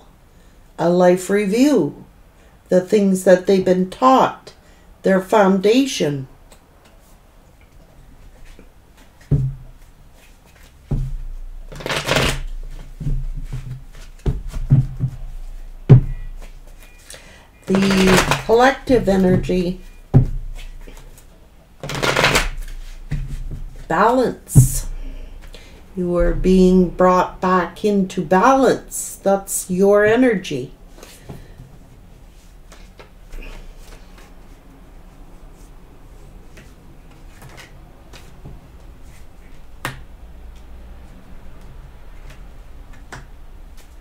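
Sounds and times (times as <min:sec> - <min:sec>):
low steady hum: 0:00.0 - 0:44.0
cards rustling while shuffled: 0:07.0 - 0:15.7, 0:16.3 - 0:19.9, 0:20.5 - 0:23.9, 0:35.5 - 0:39.6.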